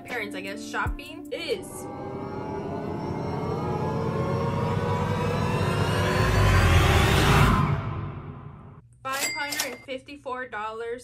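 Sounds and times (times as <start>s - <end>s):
rising whoosh riser effect: 1.5s - 8.8s.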